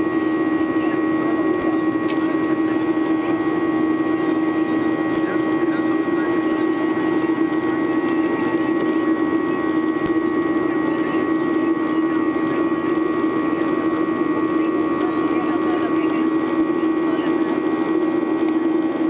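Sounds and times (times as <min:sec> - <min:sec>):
jet engine drone in cabin: 0:00.0 - 0:19.0.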